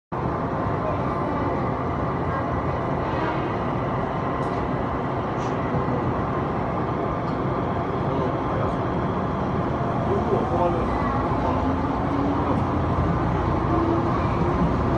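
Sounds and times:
train interior noise: 0.2s - 14.9s
train pulling away: 1.0s - 14.9s.

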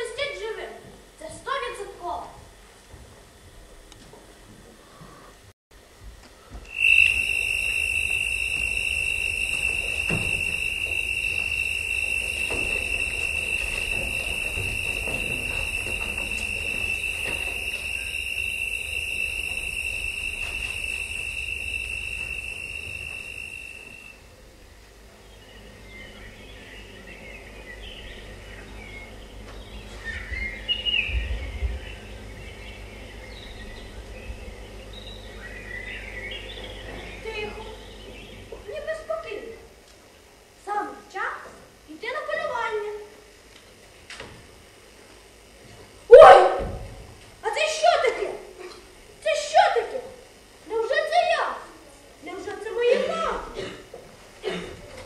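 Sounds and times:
bird chirps: 6.7s - 24.1s, 25.2s - 38.5s.

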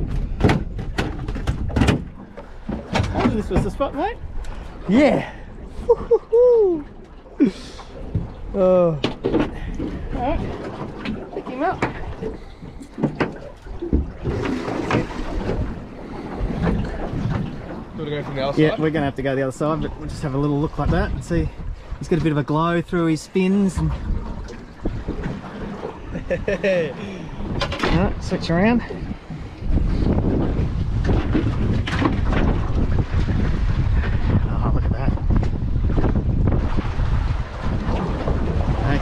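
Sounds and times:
wind buffeting microphone: 0.0s - 7.0s, 7.9s - 39.0s
water lapping against boat hull: 0.0s - 39.0s.

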